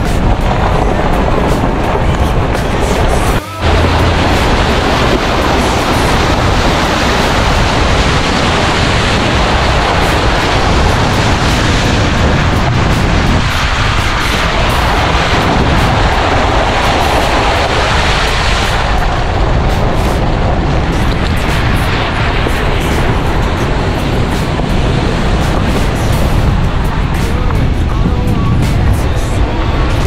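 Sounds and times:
motorcycle engine running: 0.0s - 18.0s
wind rush on microphone: 0.0s - 30.0s.

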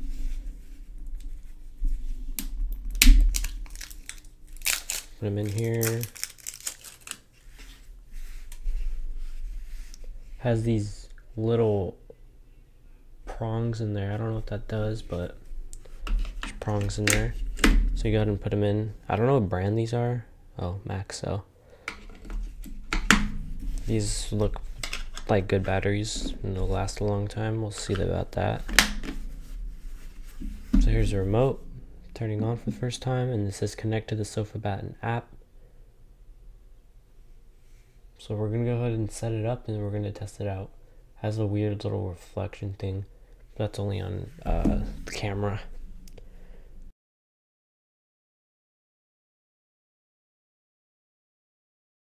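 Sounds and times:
gloves rustling: 0.0s - 11.5s, 21.7s - 33.7s.

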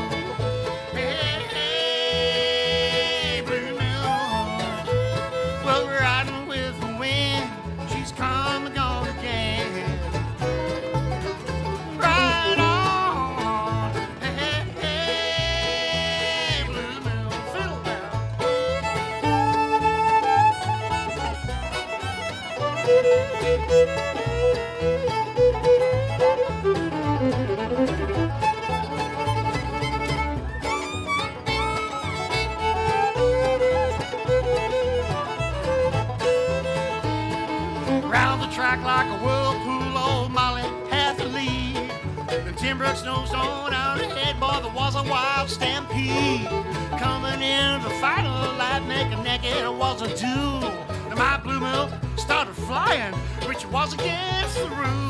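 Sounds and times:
banjo: 0.0s - 55.0s
fiddle melody: 0.0s - 55.0s
guitar: 0.0s - 55.0s
upright bass pulse: 0.0s - 55.0s.

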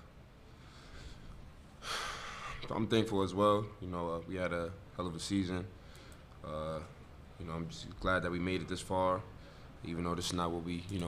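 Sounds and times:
man's sharp intake of breath: 0.6s - 2.7s.

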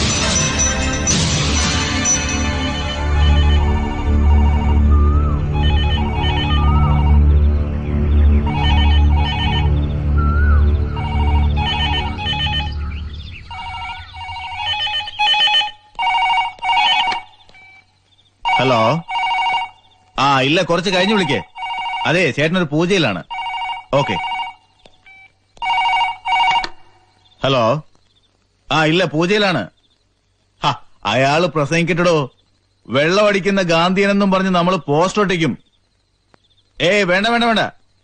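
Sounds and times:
music with heavy drum beat: 0.0s - 2.8s
telephone ringing: 0.0s - 7.4s, 8.4s - 9.8s, 10.9s - 26.9s.

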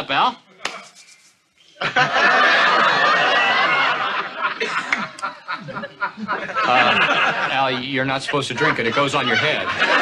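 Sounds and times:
studio audience laughing: 1.8s - 10.0s.

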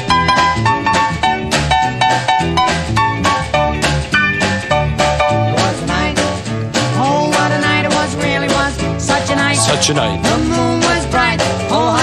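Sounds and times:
rhythm and blues band playing: 0.0s - 12.0s.

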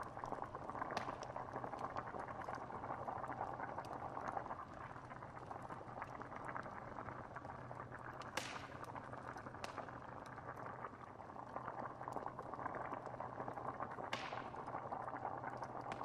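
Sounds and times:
stew bubbling in pot: 0.0s - 16.0s
sharp fire snaps: 8.2s - 9.9s, 14.1s - 14.7s.

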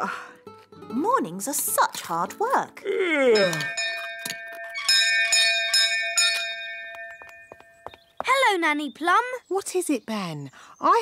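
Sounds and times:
doorbell ringing: 3.4s - 8.0s.

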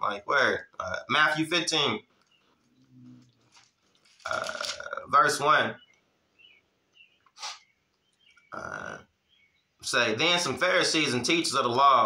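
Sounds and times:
man's throaty uh: 4.2s - 5.1s, 8.5s - 9.1s.

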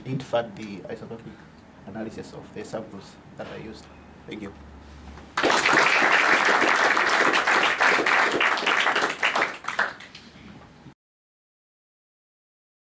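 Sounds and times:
audience applauding: 5.4s - 10.2s.

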